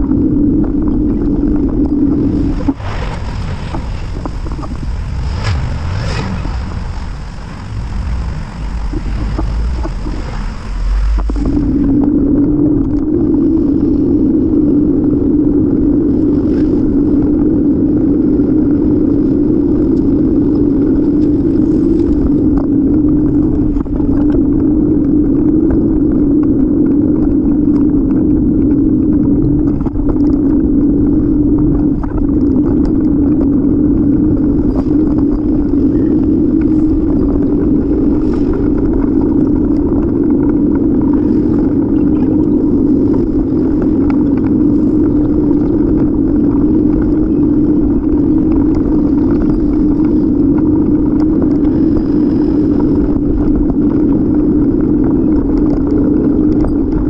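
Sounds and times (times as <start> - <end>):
wind and road noise rumble: 0.0 - 57.0.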